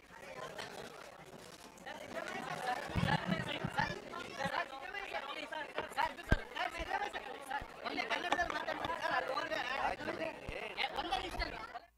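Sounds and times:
people chattering: 0.0 - 11.9.

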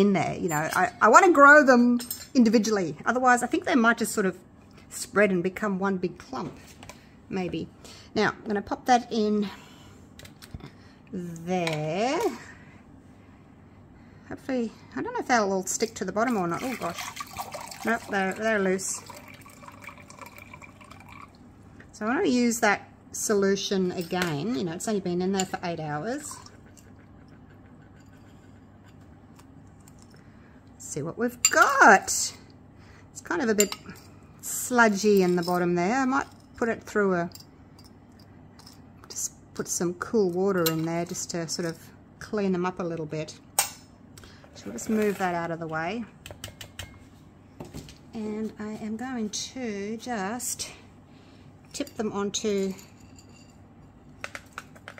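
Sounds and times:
liquid dripping and trickling: 16.7 - 18.2, 19.0 - 21.4.

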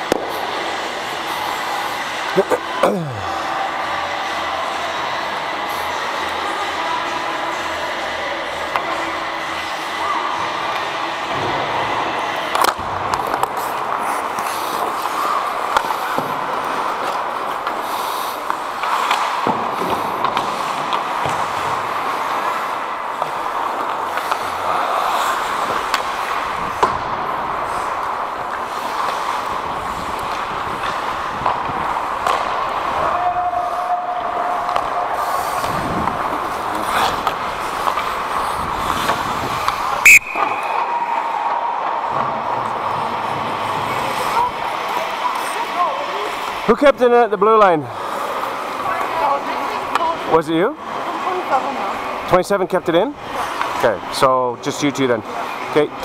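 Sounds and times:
knocks of sticks and puck: 0.0 - 0.9, 10.7 - 44.2
skates rushing on ice: 0.0 - 56.0
referee's whistle blast: 40.0 - 41.2.

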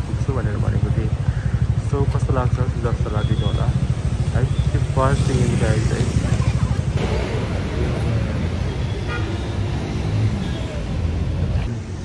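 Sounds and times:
traffic engines rumbling: 0.0 - 12.0.

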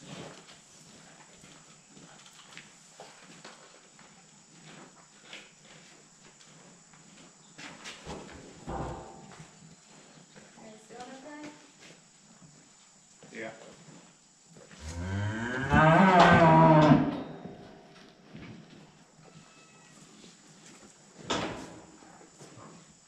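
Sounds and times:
cattle hoof steps on metal: 8.1 - 9.5
deep knock: 8.7 - 9.4.

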